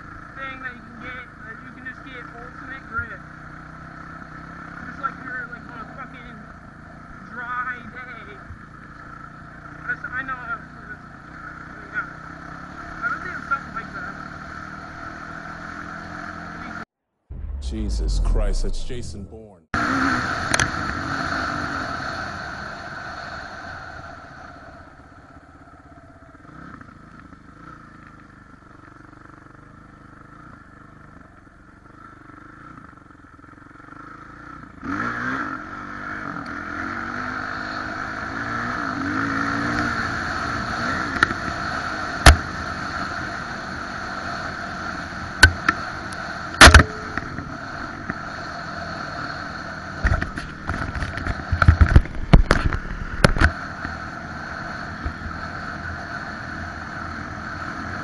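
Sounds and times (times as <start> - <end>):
dirt bike engine revving: 0.0 - 19.0, 19.8 - 25.0, 31.9 - 58.0.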